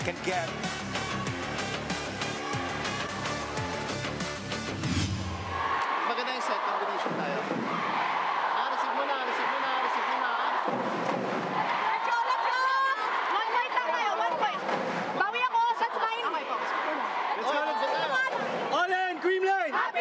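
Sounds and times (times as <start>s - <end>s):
man giving instructions: 0.0s - 0.6s, 17.4s - 20.0s
arena crowd chatter: 5.3s - 20.0s.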